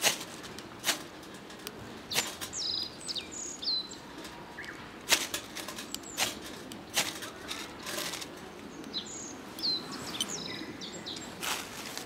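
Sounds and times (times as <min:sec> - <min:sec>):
dead leaves rustling: 0:00.0 - 0:03.2, 0:03.9 - 0:08.6, 0:09.8 - 0:12.0.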